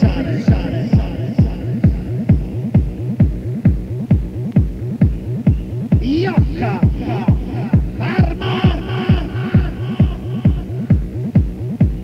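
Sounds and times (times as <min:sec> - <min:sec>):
four-on-the-floor kick drum: 0:00.0 - 0:12.0.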